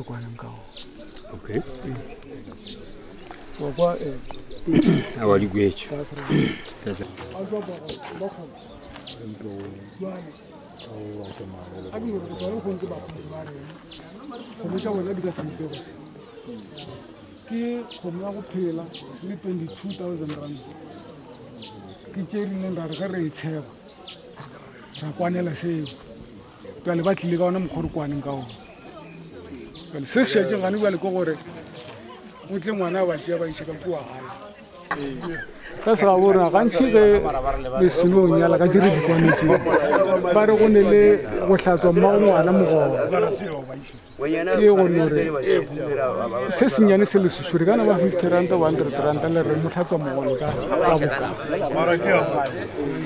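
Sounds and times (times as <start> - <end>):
high bird chirps: 0.0 - 7.0
men talking: 0.0 - 53.0
small birds chirping: 0.0 - 53.0.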